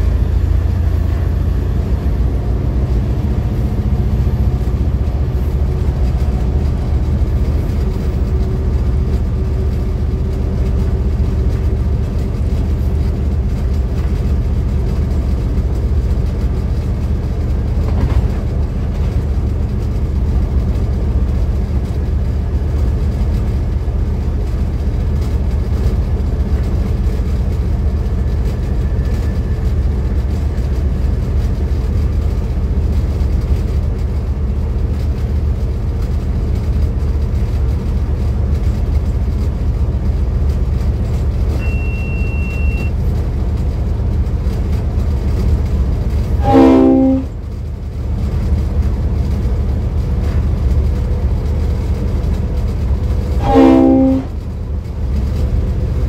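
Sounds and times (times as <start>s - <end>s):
diesel locomotive engine drone: 0.0s - 56.0s
train wheels on rails: 0.0s - 56.0s.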